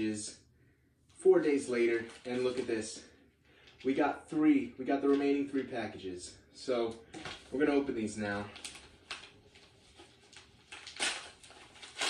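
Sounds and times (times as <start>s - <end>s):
paper rustling: 1.7s - 2.8s, 7.1s - 7.6s, 8.3s - 12.0s
paper envelope tearing: 8.6s - 12.0s.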